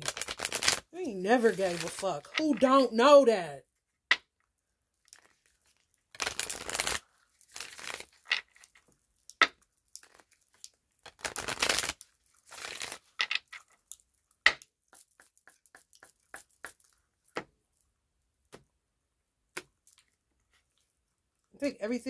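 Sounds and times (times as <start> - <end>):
cards being shuffled: 0.0 - 2.7, 5.2 - 8.8, 11.1 - 13.7, 14.5 - 17.5
cards clicking and tapping: 14.5 - 17.5.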